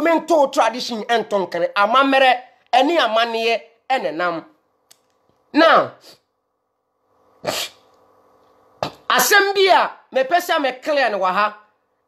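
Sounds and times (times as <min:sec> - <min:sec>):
man sneezing: 0:07.4 - 0:07.9.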